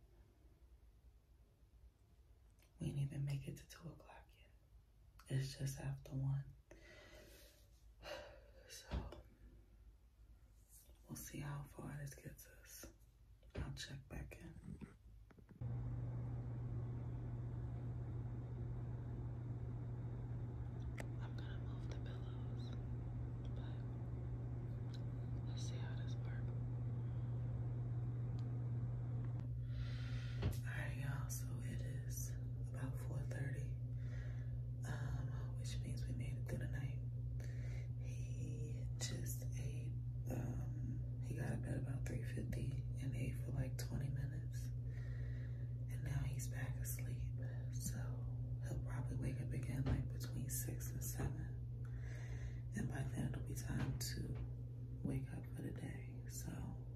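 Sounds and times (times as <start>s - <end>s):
soft whispering: 2.8s - 4.6s, 10.6s - 13.0s, 13.6s - 15.0s, 20.6s - 27.2s, 30.4s - 33.8s, 34.8s - 37.1s, 45.9s - 51.6s, 52.7s - 56.8s
steady low hum: 10.5s - 56.9s.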